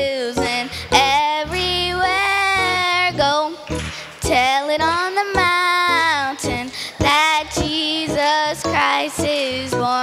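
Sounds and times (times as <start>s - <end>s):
girl singing into a microphone: 0.0s - 10.0s
short breaths: 6.7s - 7.0s.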